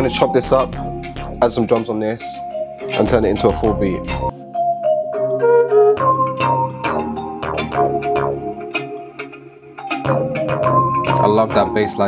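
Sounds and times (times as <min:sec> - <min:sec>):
bass line: 0:00.0 - 0:01.8, 0:02.9 - 0:04.3, 0:10.1 - 0:12.0
melodic sample loop: 0:00.0 - 0:12.0.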